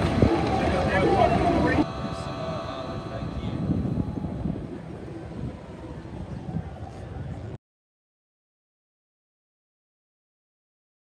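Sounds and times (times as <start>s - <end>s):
crowd chatter: 0.0s - 7.6s
distant engines droning: 0.0s - 7.6s.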